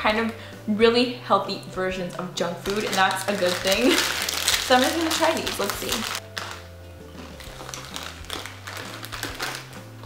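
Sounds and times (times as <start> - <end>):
soft background music: 0.0 - 10.0
crunching potato chip: 2.6 - 10.0.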